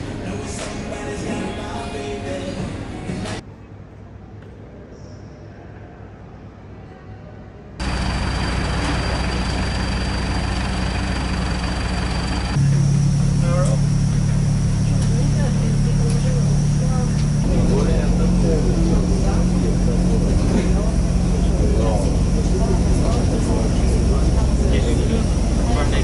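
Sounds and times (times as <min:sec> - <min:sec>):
murmur of passengers' voices: 0:00.0 - 0:08.0, 0:12.6 - 0:26.0
bus engine humming: 0:07.8 - 0:26.0.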